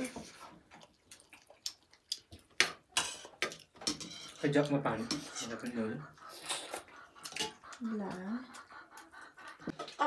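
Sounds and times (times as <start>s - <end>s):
spoons scraping steel plates: 3.0s - 5.7s.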